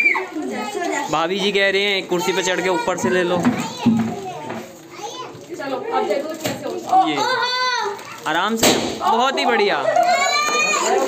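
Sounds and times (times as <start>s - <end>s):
adults talking: 0.0s - 11.0s
children chattering and playing: 0.0s - 11.0s.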